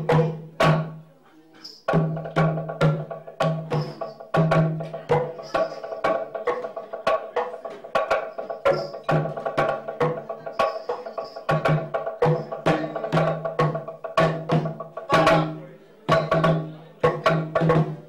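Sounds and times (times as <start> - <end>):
hand drums: 0.0 - 18.0
balafon notes: 1.9 - 18.0.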